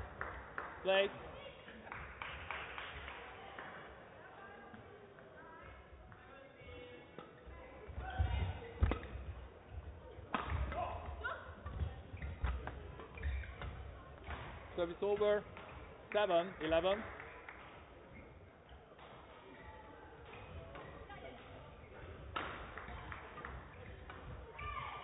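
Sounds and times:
racket hitting shuttlecock: 0:08.8 - 0:09.2, 0:10.3 - 0:14.6, 0:22.3 - 0:24.4.

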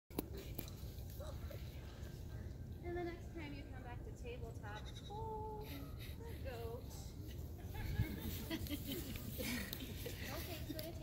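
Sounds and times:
young goat bleating: 0:04.8 - 0:05.4.

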